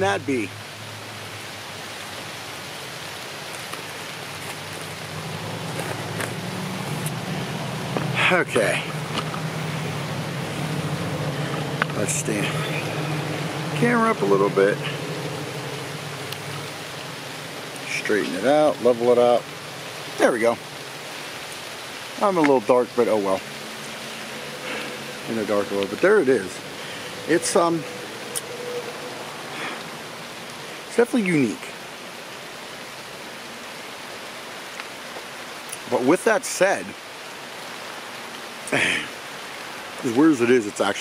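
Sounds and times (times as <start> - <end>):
steady rain: 0.0 - 41.0.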